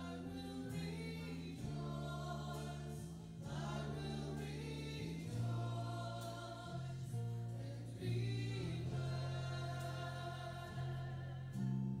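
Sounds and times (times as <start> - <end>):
bass guitar notes: 0.0 - 12.0
people singing held notes: 0.0 - 12.0.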